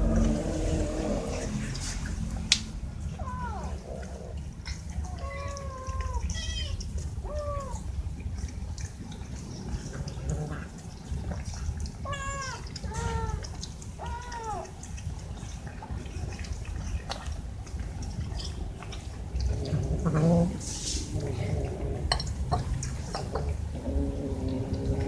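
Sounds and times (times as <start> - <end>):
young cats meowing: 3.1 - 7.9, 12.0 - 14.8.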